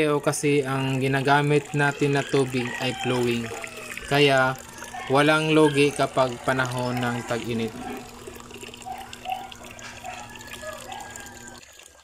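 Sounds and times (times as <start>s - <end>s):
water splashing into pool: 1.0s - 12.0s.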